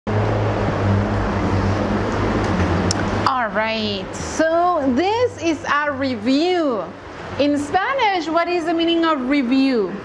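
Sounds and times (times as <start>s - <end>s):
loud rushing noise: 0.1s - 5.2s
low hum: 0.1s - 7.8s.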